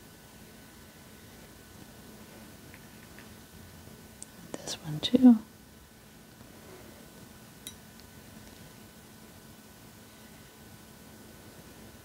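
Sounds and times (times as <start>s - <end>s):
person whispering: 4.5s - 5.2s.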